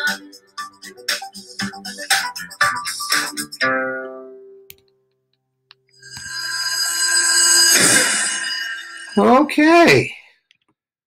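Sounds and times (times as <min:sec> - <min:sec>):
bright ringing chord: 0:06.0 - 0:09.9
noisy crash: 0:07.6 - 0:09.2.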